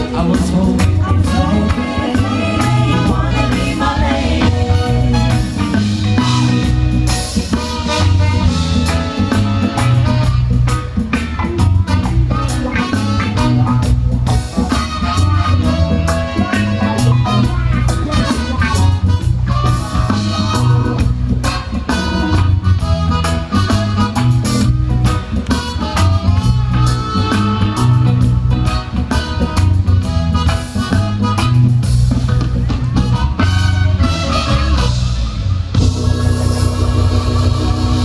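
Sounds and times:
electric guitar: 0.0 - 38.0
live band playing: 0.0 - 38.0
loud bass line: 0.0 - 38.0
steady drum beat: 0.0 - 38.0.

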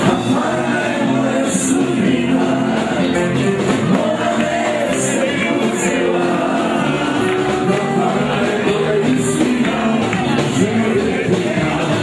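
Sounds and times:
instrumental backing: 0.0 - 12.0
men singing folk song: 0.0 - 12.0.

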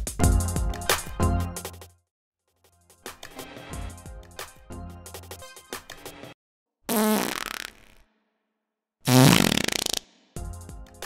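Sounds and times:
background music: 0.0 - 1.9, 2.7 - 6.4, 10.4 - 11.0
fart sound effects: 6.9 - 8.0, 9.1 - 10.1.

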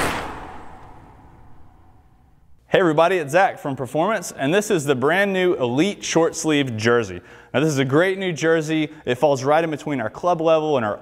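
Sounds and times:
whoosh sound effect: 0.0 - 2.4.

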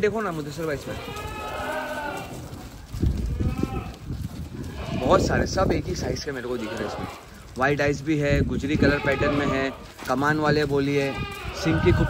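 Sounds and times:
goats bleating: 0.6 - 2.6, 3.2 - 7.6, 8.5 - 12.0.

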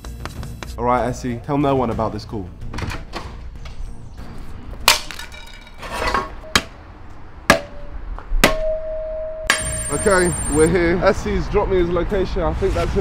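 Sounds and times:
bright high-ringing metal hit: 8.5 - 10.5
ringing tone: 8.6 - 10.7
sharp metallic clanks: 9.4 - 10.5.

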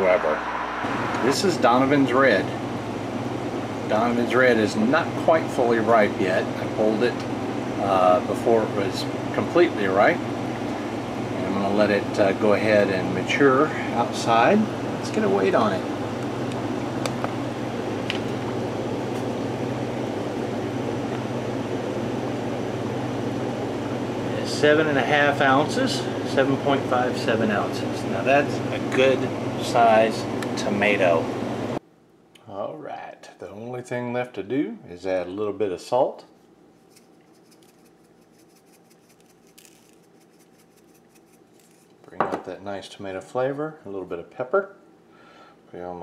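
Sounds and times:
mechanical hum with hiss: 0.0 - 46.0
salt grains shaken from shaker: 36.8 - 41.9.

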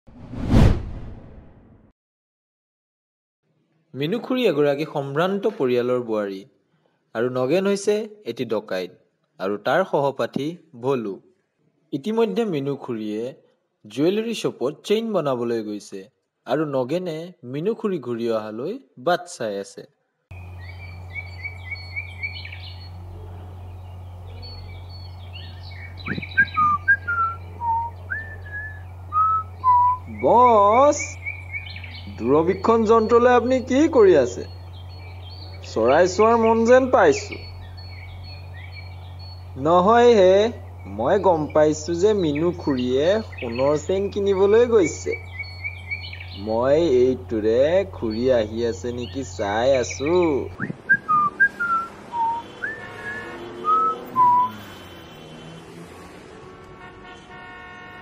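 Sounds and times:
whoosh with deep rumble: 0.1 - 1.8
birds chirping: 20.3 - 58.0
steady low hum: 20.4 - 51.0
sliding whistled notes: 26.0 - 30.2, 50.6 - 54.8.

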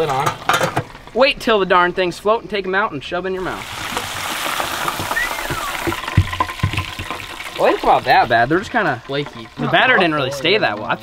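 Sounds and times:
food sizzling in hot oil: 3.4 - 11.0
whistle-like chirp: 5.1 - 6.0.

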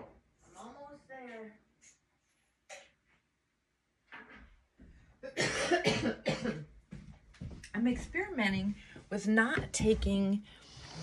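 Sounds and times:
woman coughing: 5.2 - 6.7.

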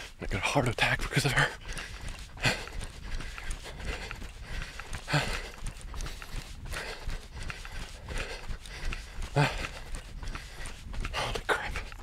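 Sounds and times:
man breathing heavily: 0.0 - 12.0
man gasping: 1.3 - 12.0.

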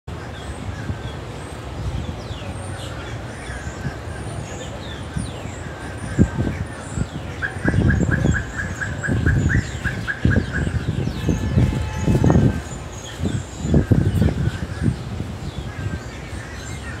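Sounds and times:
wind gusts on microphone: 0.1 - 17.0
bird chirping: 0.3 - 17.0.

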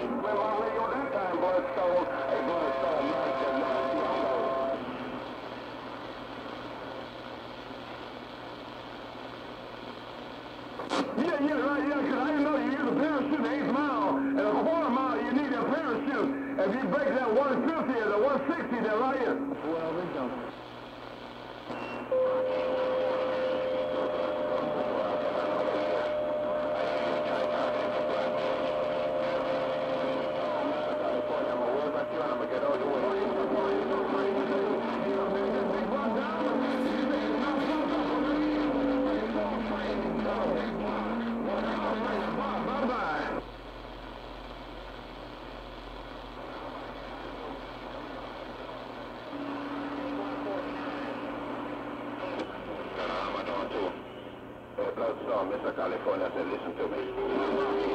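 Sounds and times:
radio whistling tones: 0.0 - 5.7, 21.6 - 43.4, 49.2 - 54.4
distorted radio transmission: 0.0 - 57.9
radio band noise: 0.0 - 57.9.

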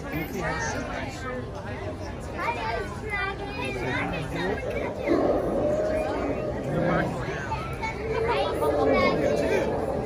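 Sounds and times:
chatter of voices with children: 0.0 - 10.0.

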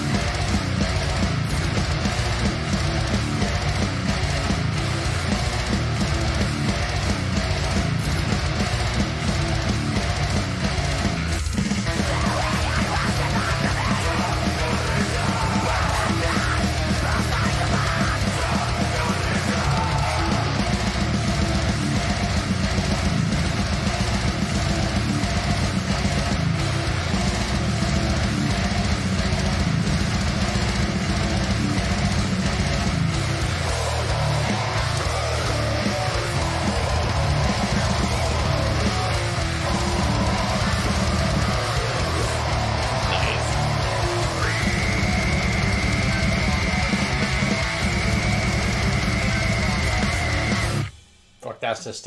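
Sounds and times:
death metal music: 0.0 - 51.6.

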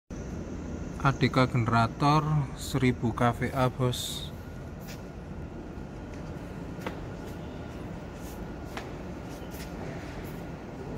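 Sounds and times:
soft clicks or scuffs: 8.2 - 10.4.

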